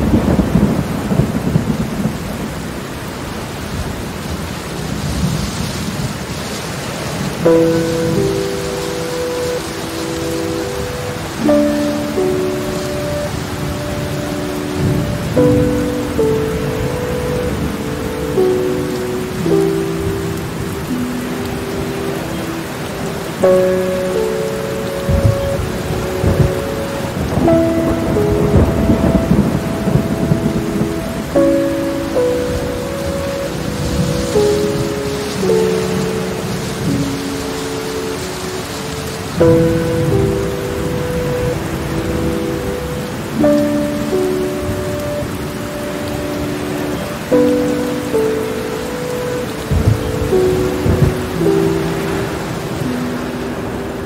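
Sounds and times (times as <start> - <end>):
heavy rain: 0.0 - 54.0
soft music of sustained chords: 0.0 - 54.0
thunder rumbling: 0.0 - 54.0.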